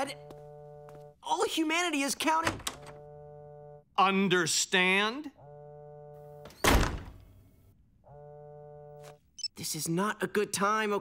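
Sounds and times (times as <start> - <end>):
cell phone ringing: 0.0 - 1.4, 2.8 - 3.9, 5.4 - 6.6, 8.1 - 9.5.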